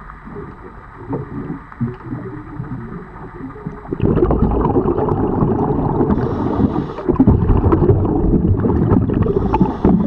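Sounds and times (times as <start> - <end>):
small crackles underwater: 0.0 - 10.0
underwater churning rumble: 0.0 - 10.0.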